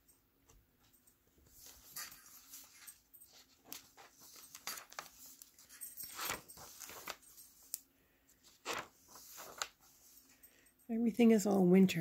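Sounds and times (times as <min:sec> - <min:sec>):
paper pages being turned: 0:01.4 - 0:07.8, 0:08.4 - 0:10.2.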